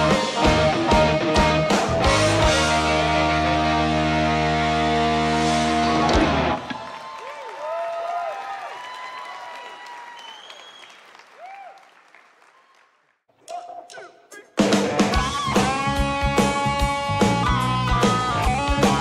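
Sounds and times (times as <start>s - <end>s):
rock band final chord: 0.0s - 6.6s
audience cheering and shouting: 4.7s - 10.2s.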